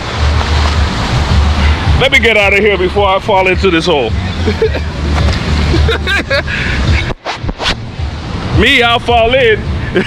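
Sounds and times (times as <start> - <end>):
man laughing: 4.4 - 5.0, 5.7 - 7.1.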